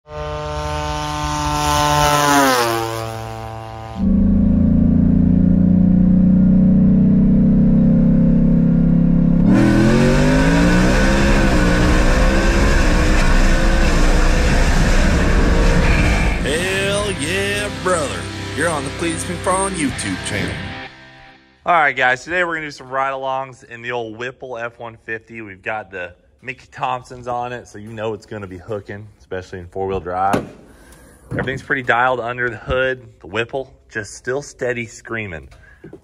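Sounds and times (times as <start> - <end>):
truck engine revving: 0.1 - 21.4
intro music: 9.2 - 22.0.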